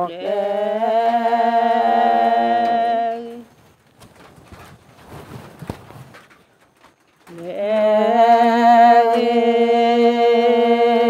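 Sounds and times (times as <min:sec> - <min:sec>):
person singing long held notes: 0:00.0 - 0:03.5, 0:07.3 - 0:11.0
faint background noise: 0:00.0 - 0:11.0.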